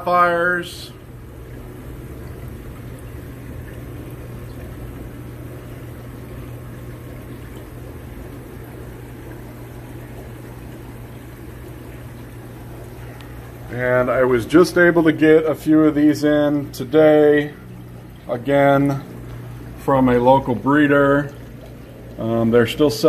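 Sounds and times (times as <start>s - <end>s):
bubbling water: 0.0s - 23.0s
constant low hum: 0.0s - 23.0s.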